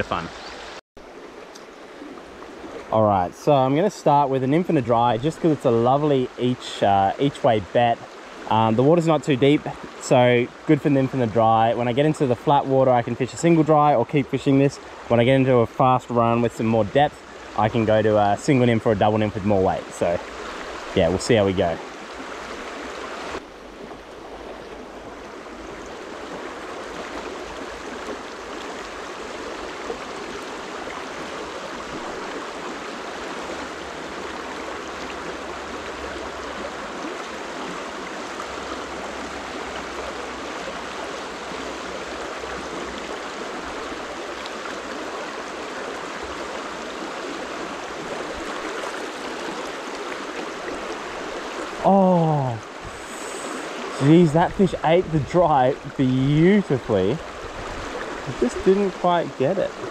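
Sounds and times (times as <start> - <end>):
stream rushing over stones: 0.0 - 59.9.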